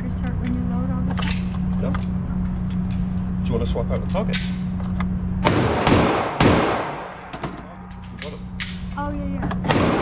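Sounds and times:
steady low hum: 0.0 - 10.0
gunshots echoing indoors: 5.4 - 7.7, 9.6 - 10.0.

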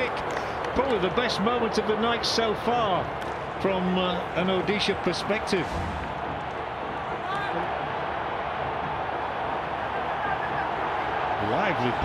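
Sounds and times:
football match ambience: 0.0 - 12.0.

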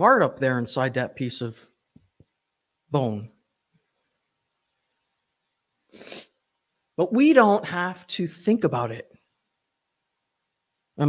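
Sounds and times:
woman sharp breath: 5.9 - 6.3.

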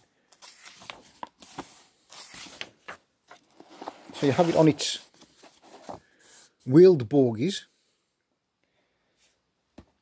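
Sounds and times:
paper pages being turned: 0.0 - 6.1.

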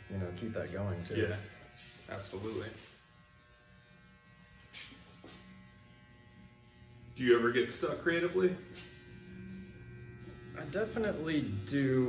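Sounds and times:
electric hair clippers buzzing: 0.0 - 12.0.

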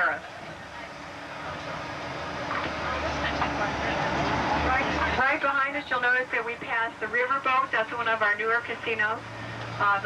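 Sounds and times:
bus engine drone: 0.0 - 10.0
road noise: 0.0 - 10.0.

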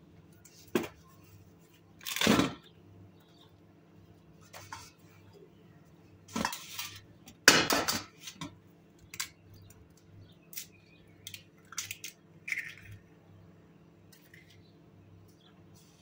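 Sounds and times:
egg cracked on steel bowl: 10.5 - 13.0.

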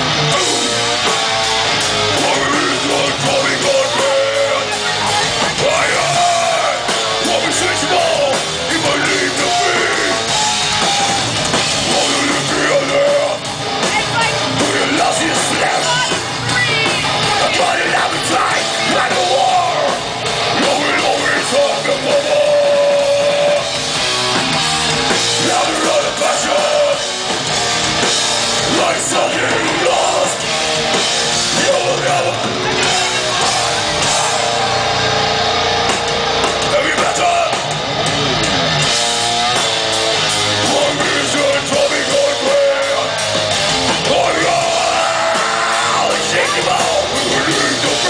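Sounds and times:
metal vocalist singing: 0.0 - 35.5, 36.5 - 38.0, 40.2 - 48.0
death metal band playing live: 0.0 - 48.0
distorted guitars: 0.0 - 48.0
drums: 0.0 - 48.0.

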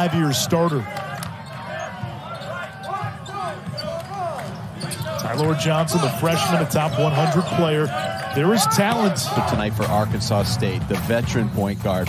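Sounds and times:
arena crowd murmur: 0.0 - 12.0
sneaker squeaks: 0.3 - 9.2.

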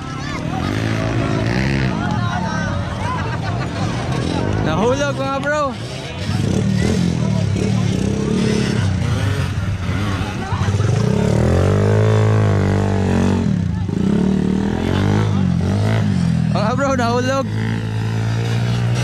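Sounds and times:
motorcycle engines revving: 0.0 - 19.0.

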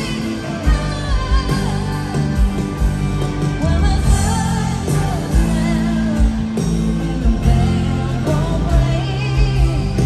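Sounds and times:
drum beats: 0.0 - 10.0
stadium crowd: 0.0 - 10.0
sustained bass notes: 0.0 - 10.0
woman singing: 0.0 - 10.0.

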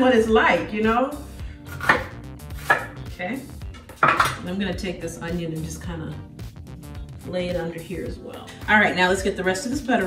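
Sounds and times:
knife chopping on wooden board: 1.7 - 3.0.

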